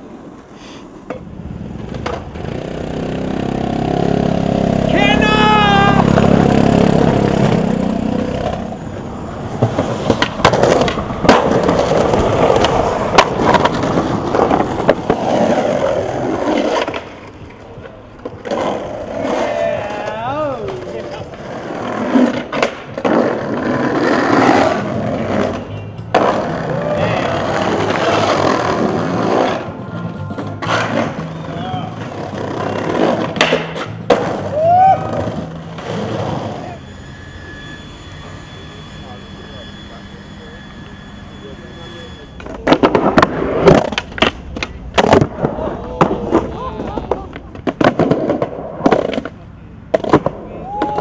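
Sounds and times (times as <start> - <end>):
skateboard wheels rolling on brick: 0.0 - 37.8, 42.0 - 51.0
skateboard clacks and slaps: 1.0 - 2.6, 9.5 - 29.7, 30.4 - 36.6, 42.4 - 51.0.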